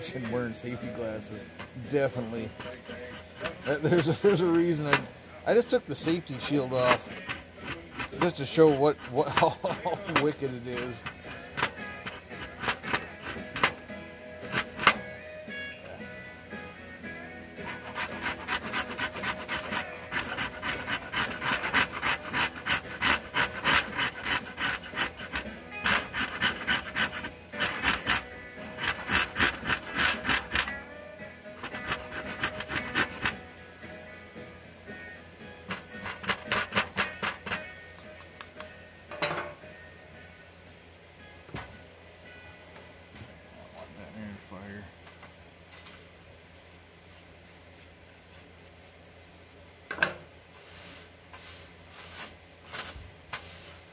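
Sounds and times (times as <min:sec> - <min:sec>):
blade scraping wood: 0:00.0 - 0:15.1, 0:17.6 - 0:30.8, 0:31.6 - 0:33.4, 0:35.6 - 0:37.6, 0:50.5 - 0:53.9.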